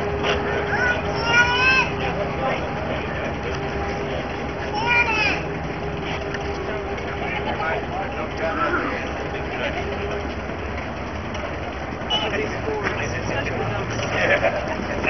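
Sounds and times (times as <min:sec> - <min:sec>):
vehicle engine rumbling: 0:00.0 - 0:15.0.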